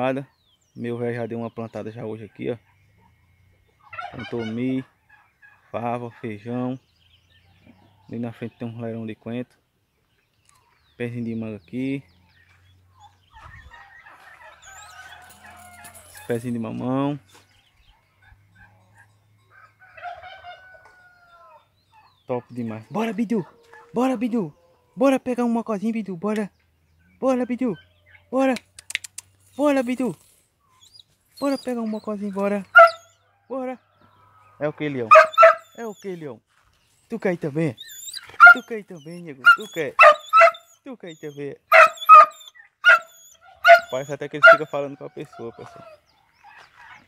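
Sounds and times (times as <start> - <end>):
dog barking: 32.7 - 33.1, 35.1 - 35.8, 38.3 - 38.7, 39.4 - 40.7, 41.7 - 44.7.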